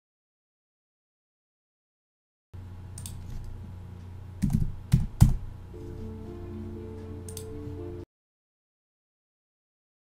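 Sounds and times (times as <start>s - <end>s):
low electrical hum: 2.6s - 8.1s.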